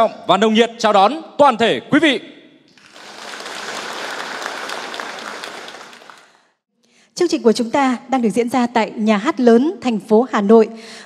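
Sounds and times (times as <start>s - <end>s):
audience applauding: 2.7s - 6.5s.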